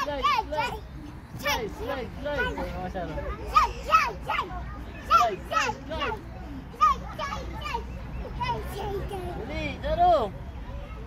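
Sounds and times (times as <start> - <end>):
young children babbling: 2.4 - 9.5.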